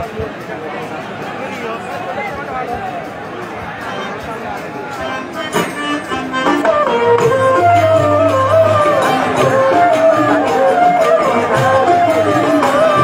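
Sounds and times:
voices chattering: 0:00.0 - 0:13.0
harmonium chords: 0:03.0 - 0:13.0.

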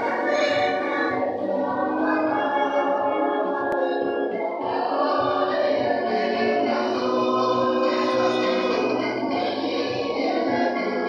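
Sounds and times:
choir singing: 0:00.0 - 0:11.0.

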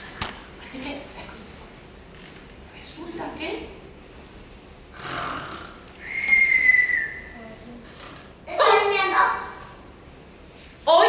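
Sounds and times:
woman imitating a snore: 0:05.0 - 0:05.9
whistled exhale: 0:06.0 - 0:07.4.

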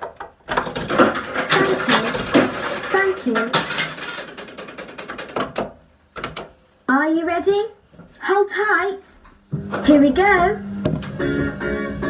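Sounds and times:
coins clinking through coin mechanism: 0:00.6 - 0:05.4.

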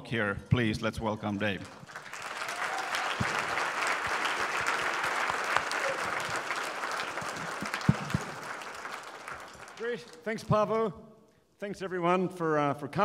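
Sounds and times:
audience applauding: 0:01.2 - 0:10.2.

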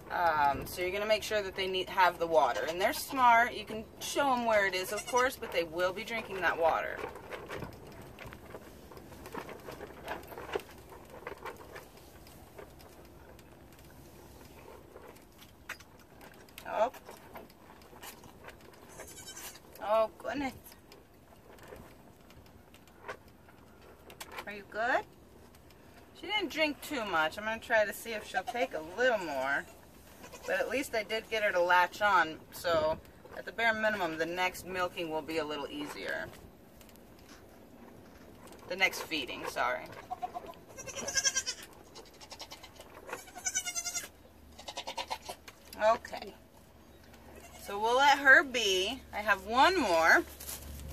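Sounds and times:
goat kid bleating: 0:04.8 - 0:05.4, 0:18.9 - 0:19.6, 0:30.2 - 0:30.7, 0:40.1 - 0:45.5, 0:47.3 - 0:47.8.

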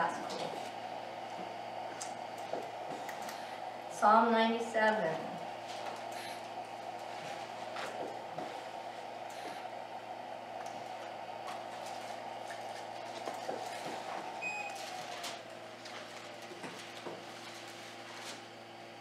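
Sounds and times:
motor humming: 0:00.0 - 0:19.0
short electronic beep: 0:14.4 - 0:14.8
paper rustling: 0:14.7 - 0:18.5.

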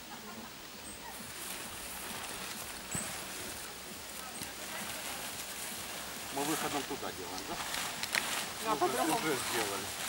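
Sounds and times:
tent fabric rustling: 0:01.0 - 0:10.0.

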